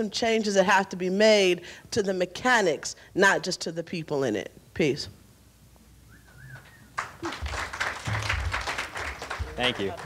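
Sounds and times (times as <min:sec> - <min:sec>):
audience applauding: 0:06.6 - 0:10.0.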